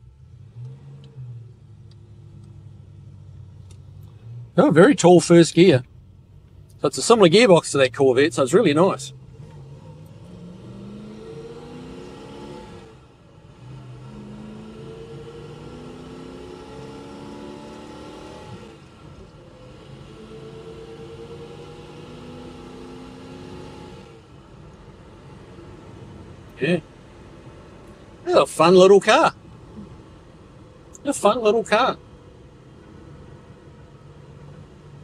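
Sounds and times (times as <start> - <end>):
car engine accelerating through gears: 0.0 - 28.8.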